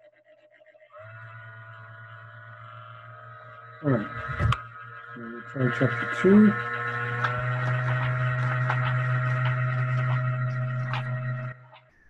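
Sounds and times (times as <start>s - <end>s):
steady hum with high tones: 0.0s - 11.8s.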